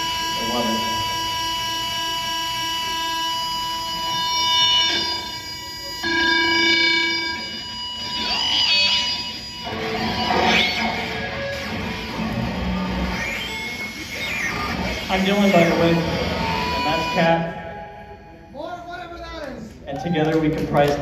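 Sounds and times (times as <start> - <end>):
wavering electric guitar notes: 0.0 - 18.5
band playing droning music: 0.0 - 18.6.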